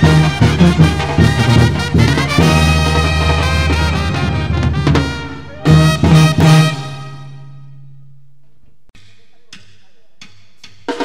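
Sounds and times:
band playing: 0:00.0 - 0:08.4.

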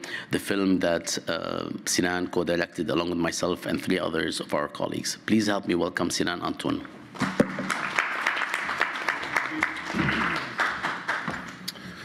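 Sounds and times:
audience applauding: 0:07.2 - 0:11.7.

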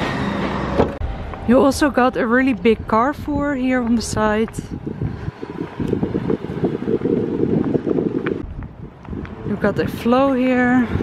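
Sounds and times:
wind buffeting microphone: 0:00.8 - 0:11.0.

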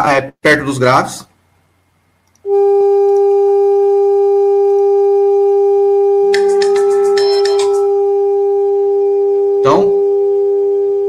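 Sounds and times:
steady sine test tone: 0:02.4 - 0:11.0
clicks and short high beeps: 0:06.3 - 0:07.9.

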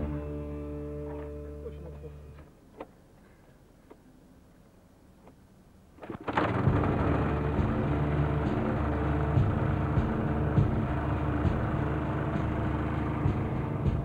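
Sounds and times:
petrol generator running: 0:06.0 - 0:14.0.

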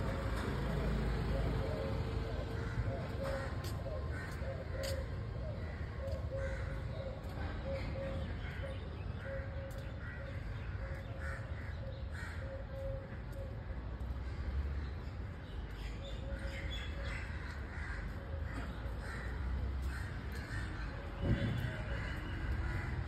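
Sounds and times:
crows cawing: 0:02.5 - 0:07.0, 0:09.3 - 0:12.9, 0:17.1 - 0:21.0, 0:21.8 - 0:23.0.

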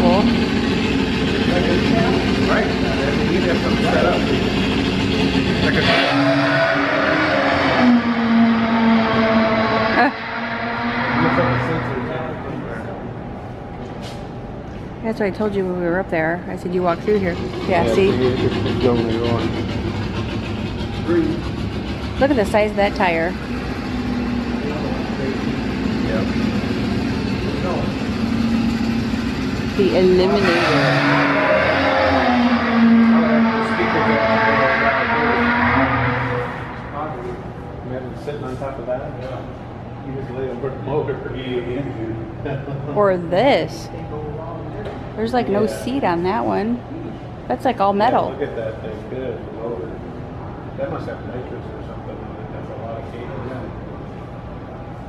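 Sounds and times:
recorded drag race engine: 0:00.0 - 0:14.8, 0:15.9 - 0:46.7
faint voices murmuring: 0:01.3 - 0:06.0, 0:16.5 - 0:23.3, 0:24.4 - 0:26.7
low mechanical hum: 0:11.1 - 0:31.6, 0:36.2 - 0:55.0.

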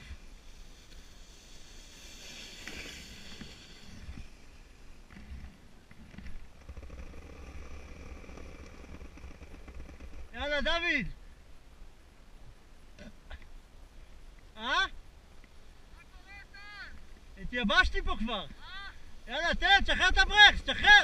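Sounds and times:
sled scraping over snow: 0:00.0 - 0:10.7, 0:19.2 - 0:21.0.

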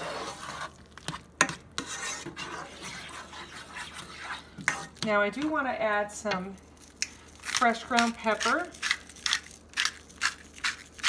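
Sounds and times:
spoon scraping frying pan: 0:00.0 - 0:05.6.

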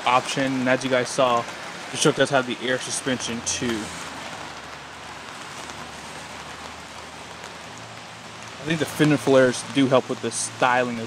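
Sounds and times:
rain falling on wet pavement: 0:00.0 - 0:11.0.

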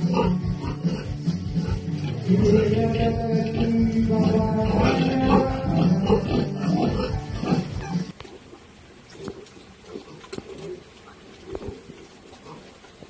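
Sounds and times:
background music: 0:00.0 - 0:08.1
pigs grunting faintly: 0:00.0 - 0:13.0.

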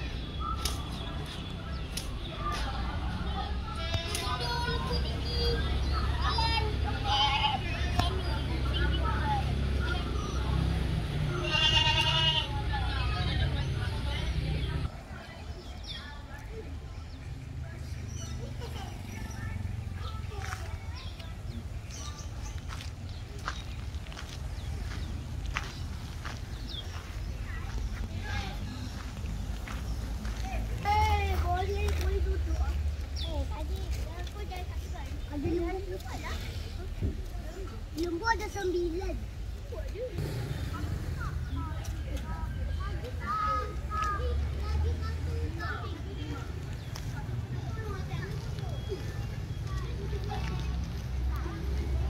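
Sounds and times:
faint distant voices: 0:00.0 - 0:52.0.

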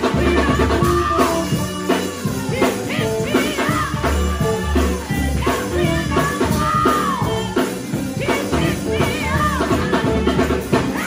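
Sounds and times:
held bass notes: 0:00.0 - 0:11.0
instrumental backing: 0:00.0 - 0:11.0
man singing gospel song: 0:00.0 - 0:11.0.

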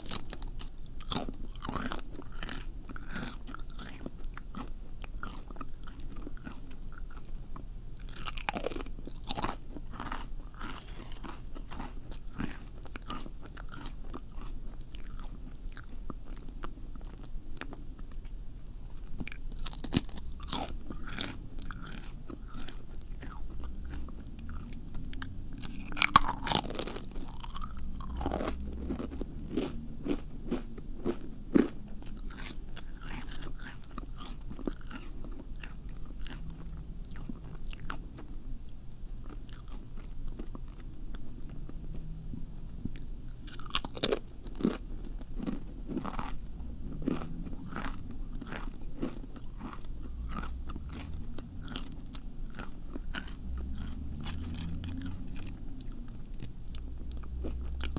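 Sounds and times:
crunchy biting and chewing: 0:00.0 - 0:18.3, 0:19.0 - 0:42.1, 0:42.9 - 0:57.9.

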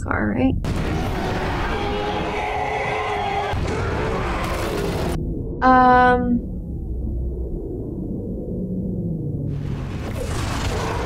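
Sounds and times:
rushing rumbling noise: 0:00.6 - 0:11.0.

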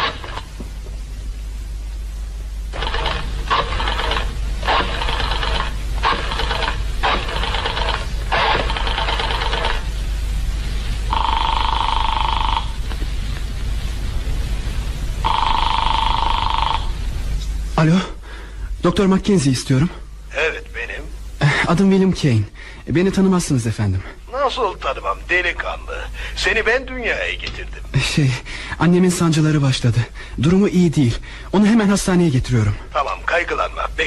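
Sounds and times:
telephone ringing tone: 0:00.0 - 0:00.5, 0:02.7 - 0:09.9, 0:11.1 - 0:12.9, 0:15.2 - 0:17.0.

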